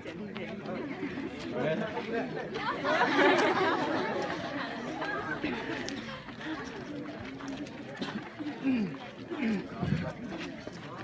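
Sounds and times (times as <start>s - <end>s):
young people chattering: 0.0s - 11.0s.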